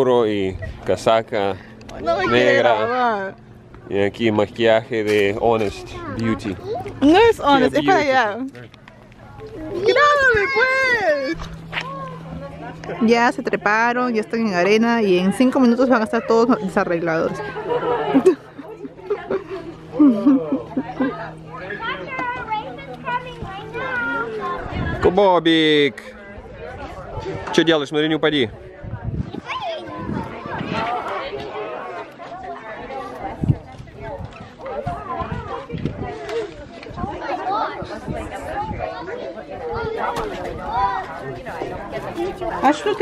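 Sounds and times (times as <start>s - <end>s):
steady low hum: 0.0s - 27.5s
children playing and calling out: 5.7s - 7.7s, 9.0s - 13.0s, 15.8s - 25.0s, 28.6s - 43.0s.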